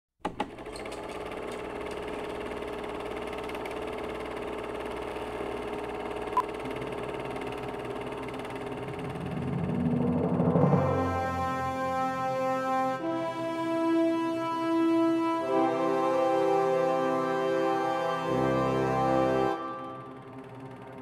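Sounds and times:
mechanical whirr: 1.2 - 10.6.

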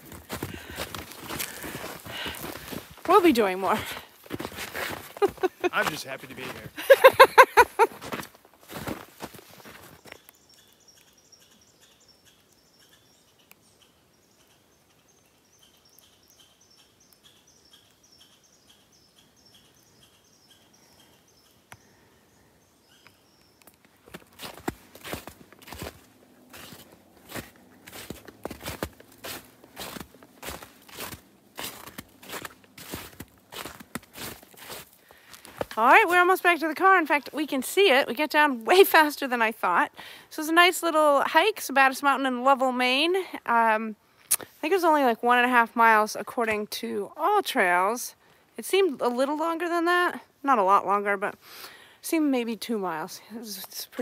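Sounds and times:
footsteps on snow: 0.0 - 10.2, 24.0 - 37.5.

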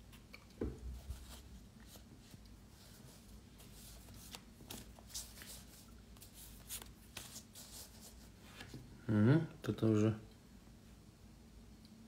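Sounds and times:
cards being shuffled: 1.2 - 8.8.

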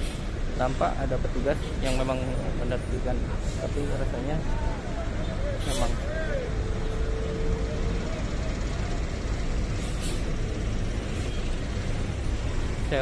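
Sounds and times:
bus engine rumbling: 0.0 - 13.0
street traffic: 0.0 - 13.0.

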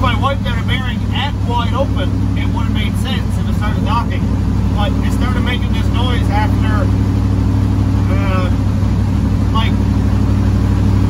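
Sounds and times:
truck engine droning: 0.0 - 11.0.

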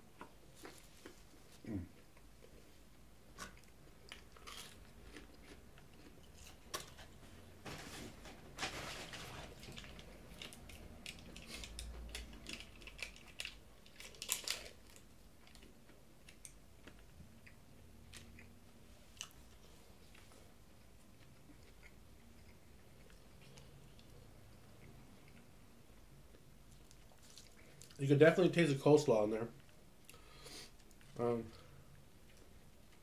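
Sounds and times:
quiet chewing and crunching: 0.0 - 7.5, 9.5 - 28.0, 29.5 - 33.0
plastic packet rustling and tearing: 8.6 - 15.0.

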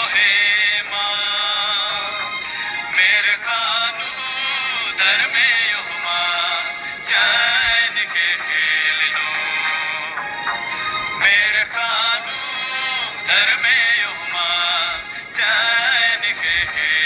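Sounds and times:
backing track: 0.0 - 17.0
person singing devotional song: 0.0 - 17.0.

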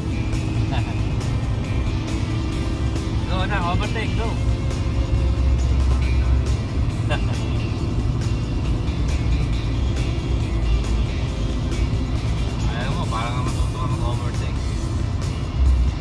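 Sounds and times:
car road and engine noise: 0.0 - 16.0
music playing: 0.0 - 16.0.

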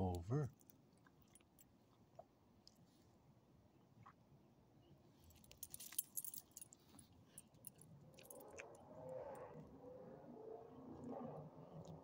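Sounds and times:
dog collar tags jingling: 5.5 - 6.8.

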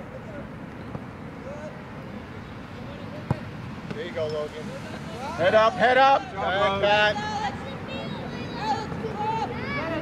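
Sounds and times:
soccer ball kick thump: 3.3 - 4.0.

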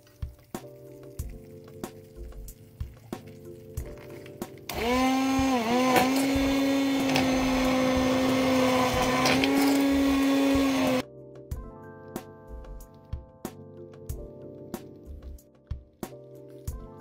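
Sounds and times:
immersion blender motor whine: 4.7 - 11.0.

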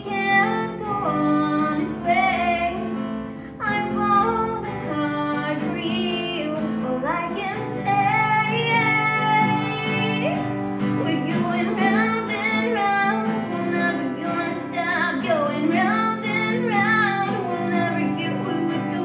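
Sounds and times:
acoustic guitar: 0.0 - 19.0
woman singing: 0.0 - 19.0.

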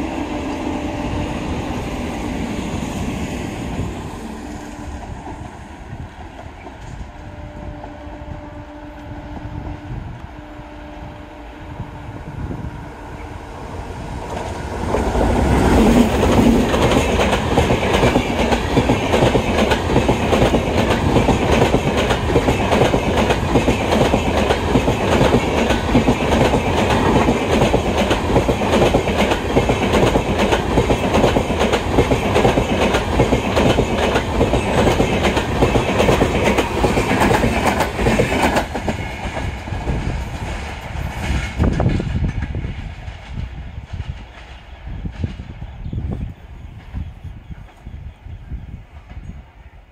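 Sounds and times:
train passing at speed: 0.0 - 49.9.

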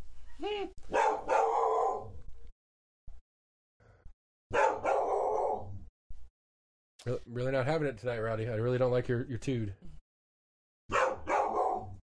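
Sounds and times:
dog barking: 0.9 - 2.2, 4.5 - 5.8, 10.9 - 12.0.

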